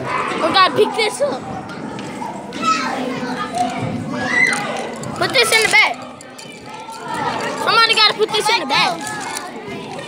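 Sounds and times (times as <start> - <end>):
children chattering: 0.0 - 10.0.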